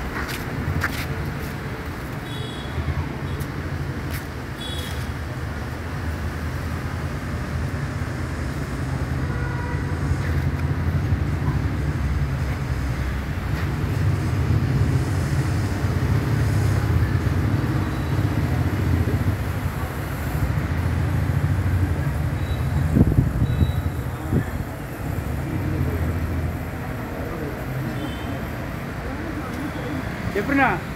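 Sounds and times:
hiss: 13.5s - 24.4s.

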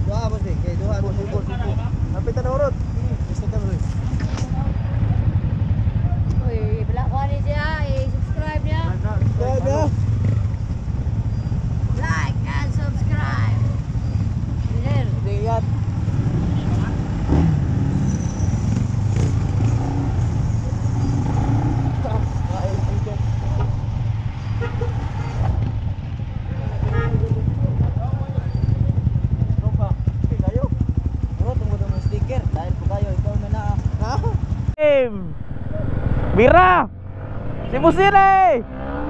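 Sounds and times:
people talking: 22.0s - 23.8s, 31.4s - 36.9s, 37.6s - 38.6s
scooter engine idling: 26.9s - 34.7s.

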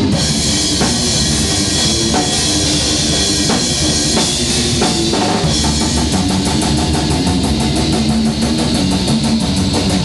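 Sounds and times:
drum kit playing: 0.0s - 10.0s
electric guitar: 0.0s - 10.0s.

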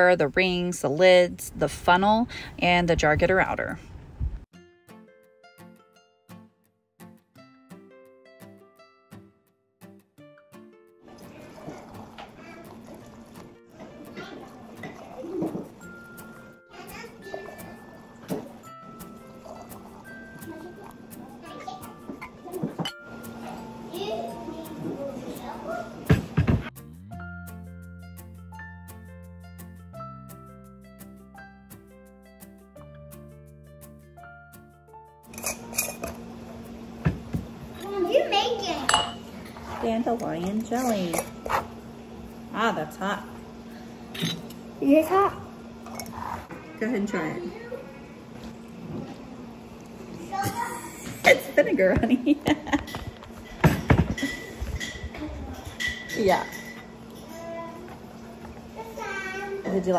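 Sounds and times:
quiet background music: 7.3s - 59.9s
hot jelly pouring through funnel: 11.1s - 15.4s
children's voices: 23.4s - 26.1s, 47.4s - 48.4s, 57.3s - 59.7s
glass jars and lids clinking: 35.3s - 36.3s, 38.9s - 41.6s
glass jar clinks: 38.9s - 39.3s.

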